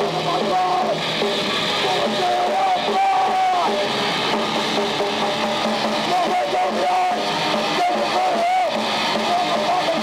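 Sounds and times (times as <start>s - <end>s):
distorted electric guitar: 0.0s - 10.0s
metal band playing live: 0.0s - 10.0s.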